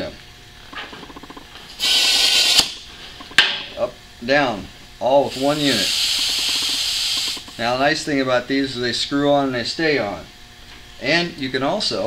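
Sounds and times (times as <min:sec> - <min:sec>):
compressed air hissing: 0:01.8 - 0:03.1, 0:05.2 - 0:07.8
small ticks: 0:06.0 - 0:07.6.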